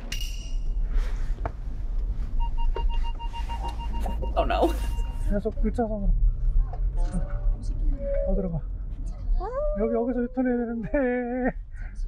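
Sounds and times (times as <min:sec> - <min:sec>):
steady low rumble: 0:00.0 - 0:12.0
rapid high beeps: 0:02.4 - 0:05.4.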